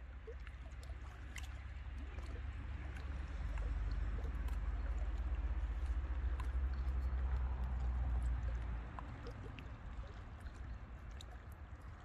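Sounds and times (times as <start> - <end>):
lake waves lapping against rocks: 0.0 - 12.0
small water splashes: 0.0 - 12.0
steady low rumble: 0.0 - 12.0.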